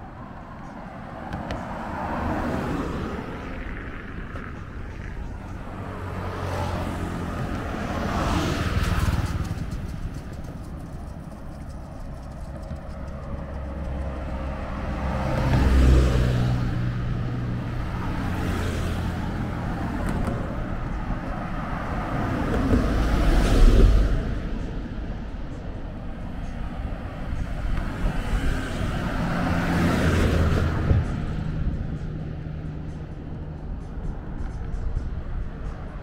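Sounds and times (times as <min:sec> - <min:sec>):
low traffic rumble: 0:00.0 - 0:36.0
passing vehicles: 0:00.0 - 0:36.0.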